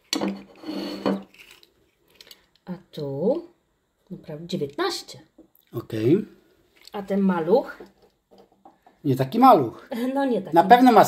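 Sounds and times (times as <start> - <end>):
dish scraping across table: 0.2 - 1.4.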